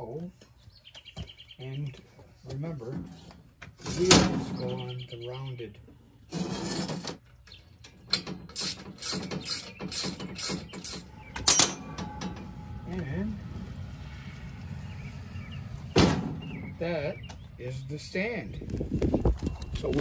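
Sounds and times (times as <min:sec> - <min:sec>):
metal clanks and knocks: 0:02.8 - 0:04.8, 0:06.4 - 0:13.1.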